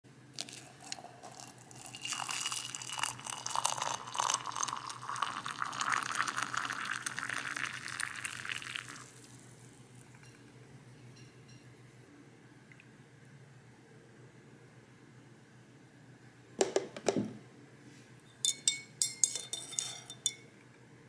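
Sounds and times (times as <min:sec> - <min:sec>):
water poured into a mug: 0:00.4 - 0:09.4.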